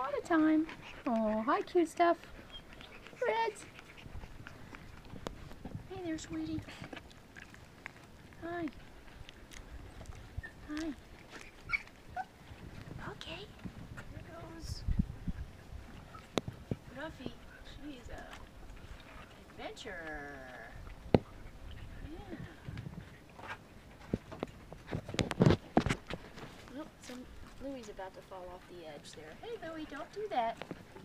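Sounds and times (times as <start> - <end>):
puppies whimpering: 0.3 - 5.2, 9.7 - 12.7.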